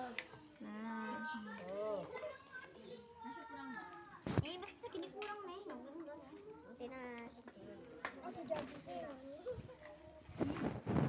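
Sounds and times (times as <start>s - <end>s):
children chattering and calling: 0.0s - 10.6s.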